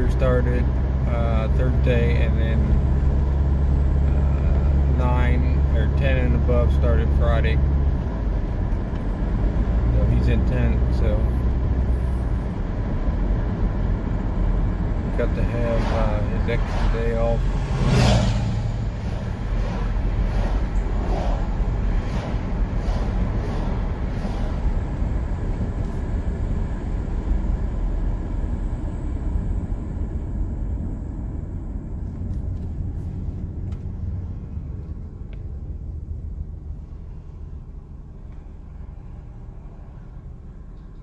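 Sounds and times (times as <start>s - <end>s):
car road and engine rumble: 0.0s - 41.0s.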